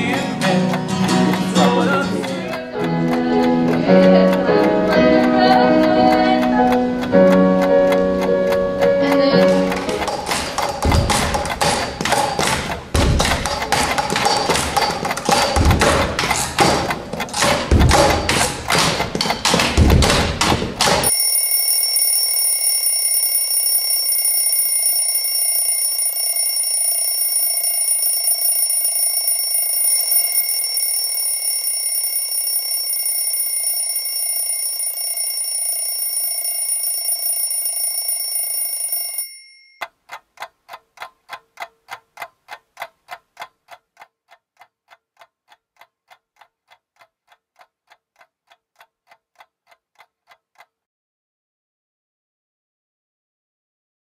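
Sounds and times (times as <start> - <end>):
clock ticking: 0.0 - 50.9
alarm clock bell ringing: 21.0 - 39.8.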